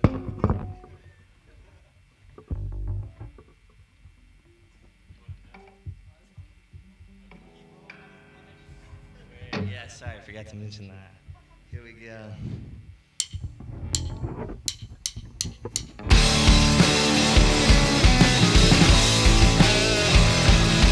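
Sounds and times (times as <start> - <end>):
small knocks: 13.2 - 16.1
electric guitar chord ringing: 16.0 - 20.9.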